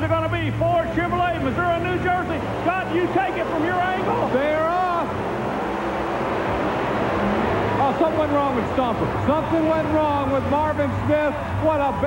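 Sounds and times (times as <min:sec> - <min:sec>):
monster truck engines roaring: 0:00.0 - 0:12.0
low hum: 0:01.7 - 0:11.6.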